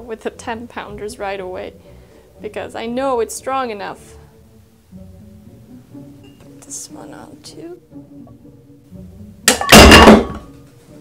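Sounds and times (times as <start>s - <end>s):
metal plates crashing on workbench: 9.5s - 10.5s.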